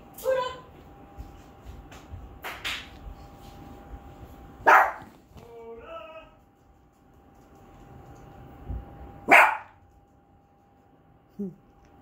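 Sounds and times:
dog barking: 4.6s - 5.2s, 9.2s - 9.8s.

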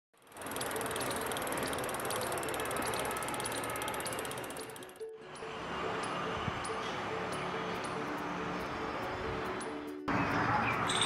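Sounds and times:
bicycle freehub ratcheting: 0.2s - 5.2s.

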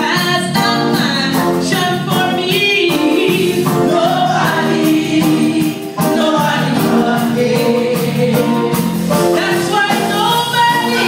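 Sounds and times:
gospel choir singing: 0.4s - 11.0s.

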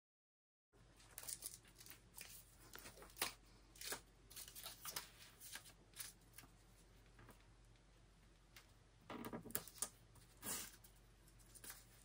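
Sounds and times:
sheet rustling and crinkling: 1.0s - 7.4s.

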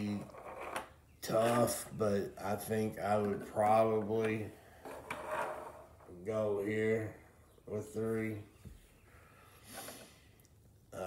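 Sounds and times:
faint breath through the nose: 9.0s - 10.4s.

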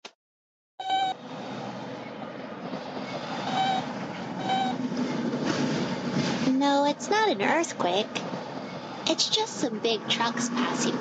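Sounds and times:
robot electronic beeps: 0.8s - 1.2s, 3.0s - 4.8s
trucks rumbling past: 0.8s - 11.0s.

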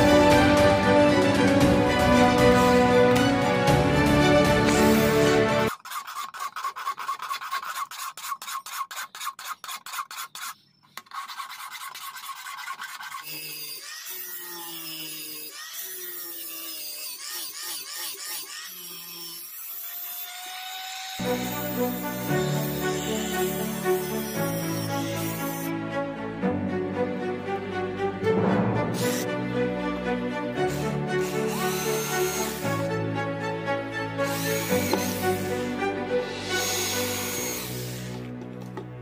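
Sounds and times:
file rasping on steel blade: 4.6s - 20.5s, 21.2s - 25.7s, 30.6s - 32.9s, 34.2s - 38.2s.

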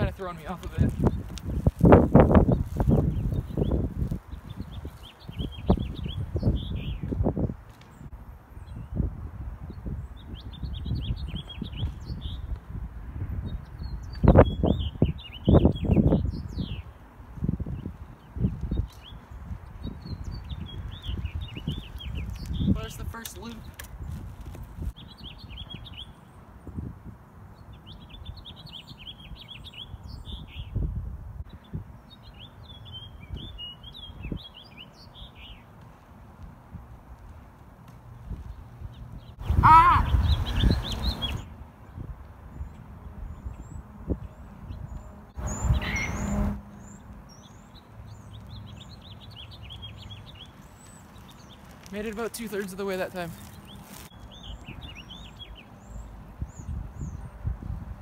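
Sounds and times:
small birds chirping: 0.0s - 9.0s, 9.7s - 12.6s, 13.4s - 30.9s, 31.5s - 36.1s, 37.8s - 57.5s
wind buffeting microphone: 0.0s - 34.6s, 36.3s - 58.0s.

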